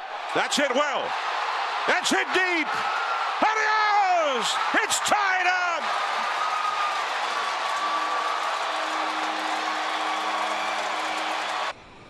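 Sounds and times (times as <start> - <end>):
crowd cheering: 0.0 - 11.8.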